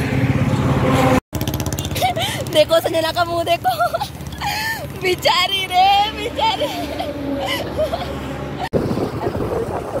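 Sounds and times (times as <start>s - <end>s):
roadside traffic: 0.0s - 10.0s
motorbike engine running: 1.4s - 3.5s
wind noise: 8.6s - 10.0s.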